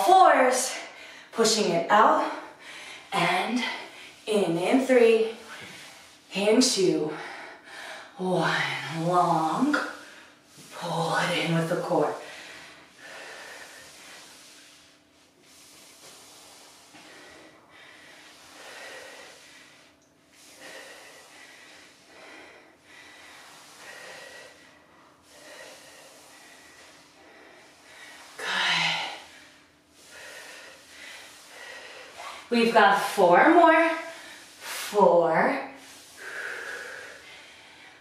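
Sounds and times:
woman breathing hard: 12.2 - 14.9, 15.5 - 32.5, 33.9 - 34.9, 35.8 - 38.0.

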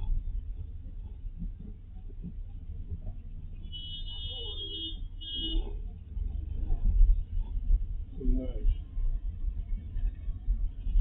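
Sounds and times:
car driving rumble: 0.0 - 11.0.

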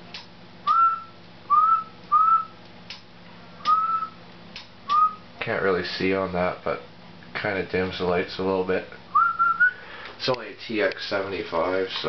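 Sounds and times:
steady low hum: 0.0 - 12.0
man whistling into microphone: 0.7 - 2.6, 3.6 - 4.2, 4.9 - 5.2, 9.1 - 9.8.

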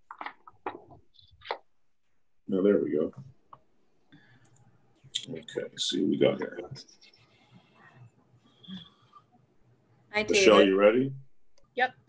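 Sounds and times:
faint background noise: 0.0 - 12.0
spoken word: 10.2 - 11.1.

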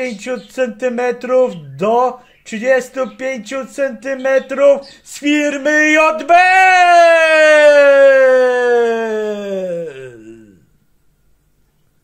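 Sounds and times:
man holding long vowel: 4.2 - 10.7.

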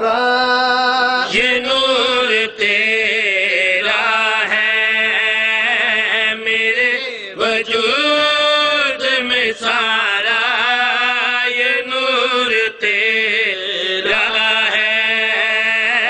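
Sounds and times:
man chanting: 0.0 - 16.0.

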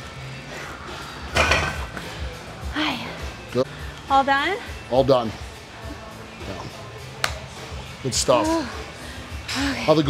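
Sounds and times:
background gym music: 0.0 - 10.0.

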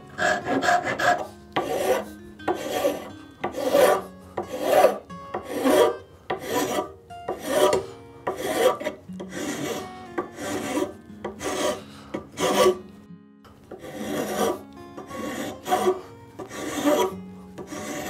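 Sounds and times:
hand file rasping on wood: 0.1 - 12.8, 13.7 - 18.0.

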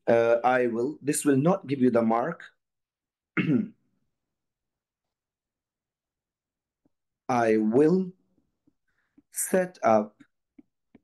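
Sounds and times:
man clearing his throat: 3.4 - 3.8.

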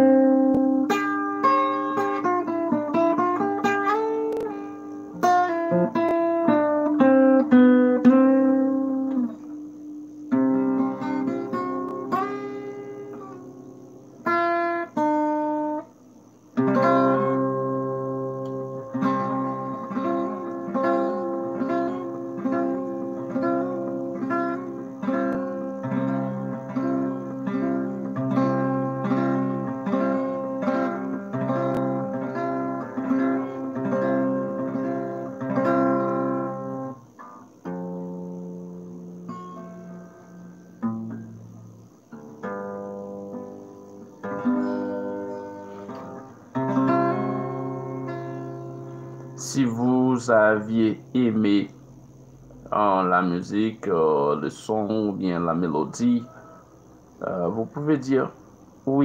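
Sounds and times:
acoustic guitar picking: 0.0 - 59.0.

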